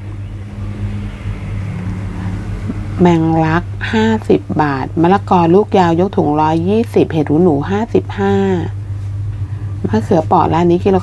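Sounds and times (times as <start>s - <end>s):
faint steady drone: 0.0s - 11.0s
low mechanical hum: 0.0s - 11.0s.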